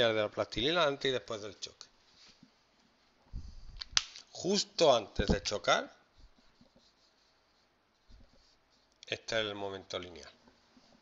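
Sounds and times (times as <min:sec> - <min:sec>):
marker scratching on whiteboard: 0:06.1 - 0:09.0.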